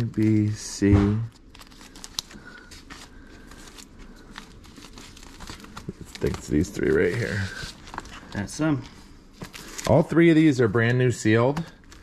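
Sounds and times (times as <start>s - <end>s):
records rustling in plastic sleeves: 0.0s - 12.0s.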